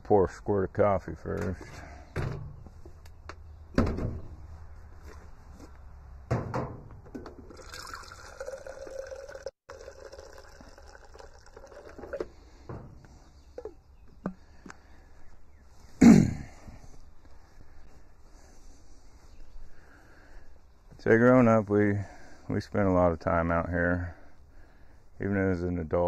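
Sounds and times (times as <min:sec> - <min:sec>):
clunks of objects on shelf: 0:02.1 - 0:02.6, 0:03.7 - 0:04.3, 0:06.3 - 0:07.4
coffee pouring into mug: 0:07.5 - 0:12.4.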